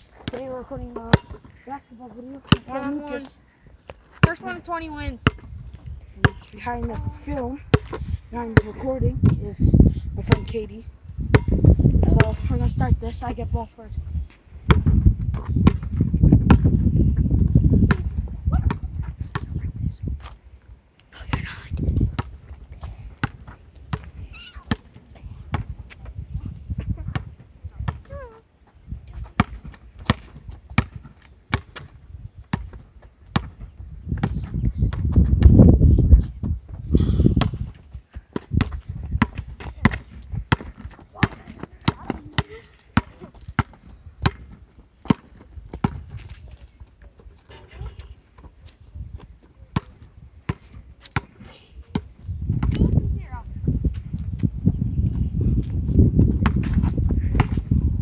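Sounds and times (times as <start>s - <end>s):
basketball bouncing on asphalt: 0.1s - 3.2s, 3.8s - 12.7s, 14.6s - 19.6s, 21.3s - 35.6s, 37.4s - 46.4s, 48.3s - 57.8s.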